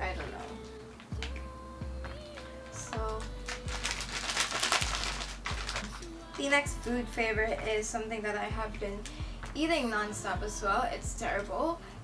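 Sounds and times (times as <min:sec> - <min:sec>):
plastic pouch crinkling: 0:02.4 - 0:06.2.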